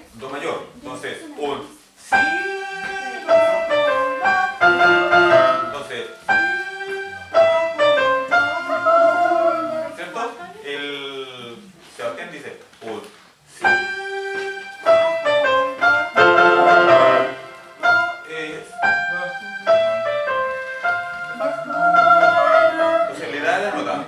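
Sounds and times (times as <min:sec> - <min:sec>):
man singing: 0:02.1 - 0:07.5
electronic keyboard piano chords: 0:02.2 - 0:09.5, 0:13.7 - 0:24.0.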